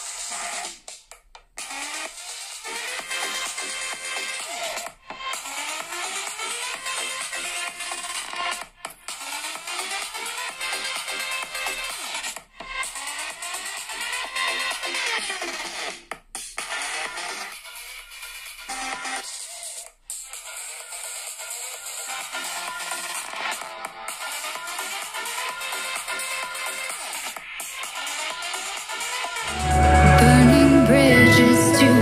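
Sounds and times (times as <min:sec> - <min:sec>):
electronic dance music from phone: 0:00.0 - 0:32.0.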